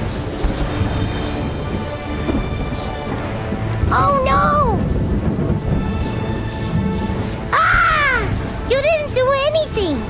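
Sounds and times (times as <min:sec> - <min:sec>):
steady rain: 0:00.0 - 0:10.0
thunder rumbling: 0:00.0 - 0:10.0.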